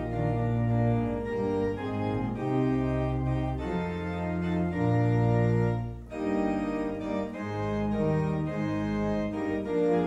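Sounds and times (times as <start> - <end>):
organ playing a hymn: 0.0 - 10.0.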